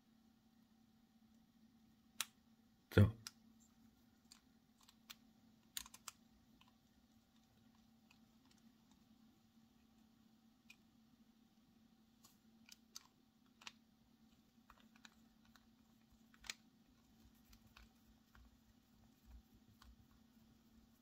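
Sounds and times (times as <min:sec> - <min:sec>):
plastic pen parts clicking: 0:04.2 - 0:09.0, 0:12.2 - 0:16.7.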